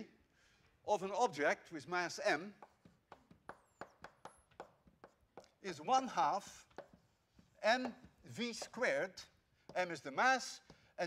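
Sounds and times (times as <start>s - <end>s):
chalk tapping on blackboard: 2.4s - 5.7s, 6.4s - 11.0s.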